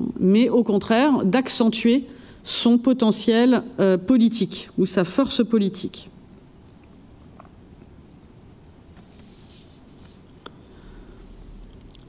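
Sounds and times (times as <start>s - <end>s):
faint rustle: 8.9s - 11.8s.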